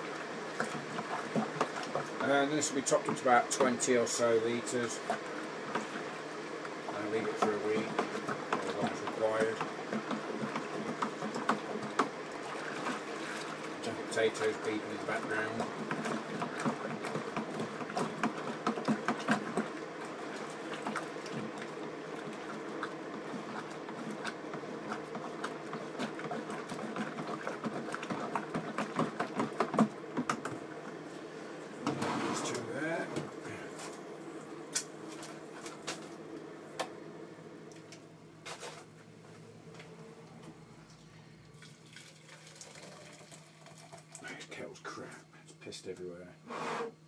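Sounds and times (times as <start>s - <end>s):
water pouring and splashing: 0.0s - 31.0s, 41.5s - 44.6s.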